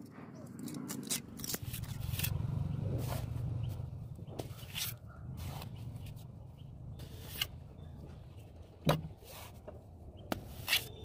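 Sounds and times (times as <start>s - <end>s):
low steady hum: 0.0s - 11.0s
trowel scraping wet plaster: 4.4s - 5.8s, 10.3s - 11.0s.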